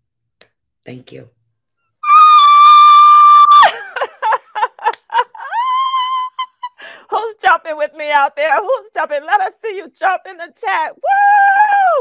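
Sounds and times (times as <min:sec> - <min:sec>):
women cheering woo: 0:02.0 - 0:04.1, 0:11.0 - 0:12.0.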